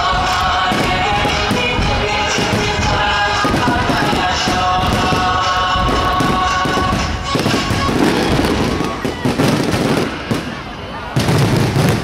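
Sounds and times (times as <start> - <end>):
fireworks bursting and crackling: 0.0 - 12.0.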